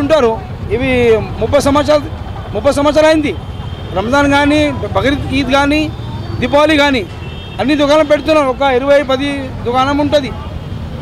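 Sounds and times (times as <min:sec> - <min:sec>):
man speaking: 0:00.0 - 0:10.5
street traffic rumble: 0:00.0 - 0:11.0.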